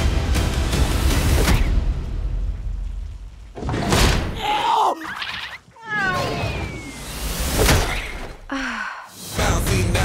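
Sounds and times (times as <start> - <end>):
cartoon cat yowl: 4.5 - 6.9
thin high falling tone: 5.8 - 7.6.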